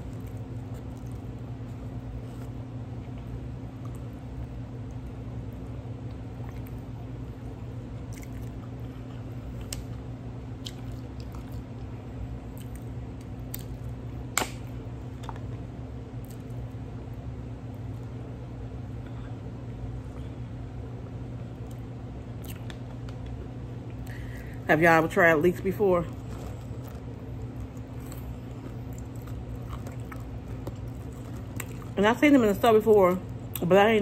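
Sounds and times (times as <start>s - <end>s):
person chewing food: 0.0s - 4.2s, 6.0s - 7.0s, 8.0s - 14.1s, 22.4s - 23.1s, 26.1s - 32.0s
steady low hum: 0.0s - 34.0s.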